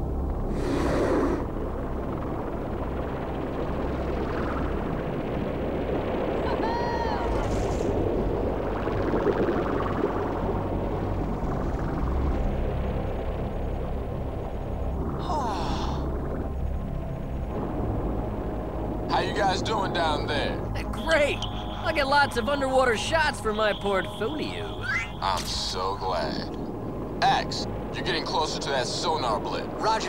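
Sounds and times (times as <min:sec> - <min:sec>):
low underwater rumble: 0:07.4 - 0:27.9
bubbling: 0:08.4 - 0:12.3
burble of arching tones: 0:19.1 - 0:30.0.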